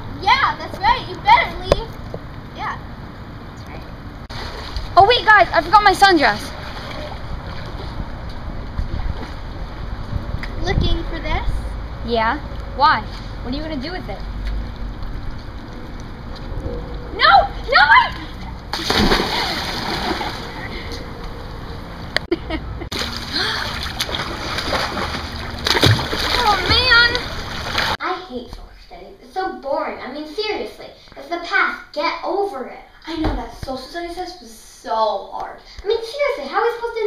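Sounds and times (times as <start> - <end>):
pool water splashing: 4.3 - 8.3, 17.2 - 22.0, 22.9 - 28.0
wind rumbling on microphone: 6.5 - 12.8, 14.1 - 19.5
girl making wordless sounds: 17.1 - 18.6.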